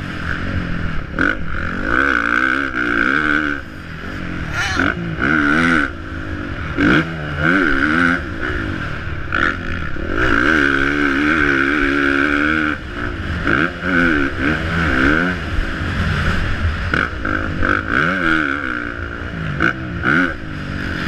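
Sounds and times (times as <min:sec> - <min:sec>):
motorbike engine revving: 0:00.0 - 0:21.0.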